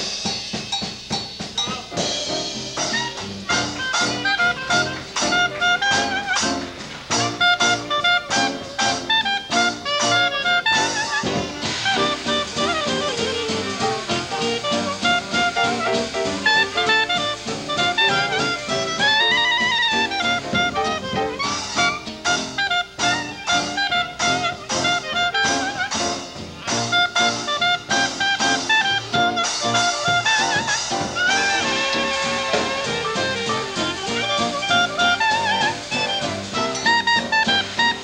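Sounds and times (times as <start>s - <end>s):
drum accents: 0.0s - 38.0s
traditional jazz band playing: 0.0s - 38.0s
clarinet note bending: 2.8s - 38.0s.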